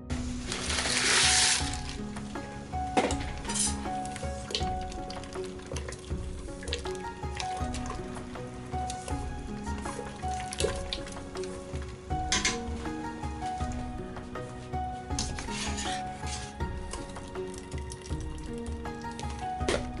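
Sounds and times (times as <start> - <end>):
background music with steady beat: 0.0 - 20.0
hissing splash into hot water: 0.1 - 12.6.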